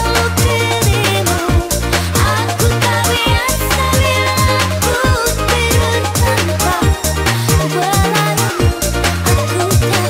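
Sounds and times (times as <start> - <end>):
gliding lead melody: 0.0 - 10.0
house music: 0.0 - 10.0
pulsing bass line: 0.0 - 10.0
kick drum: 0.4 - 5.2, 8.0 - 9.4.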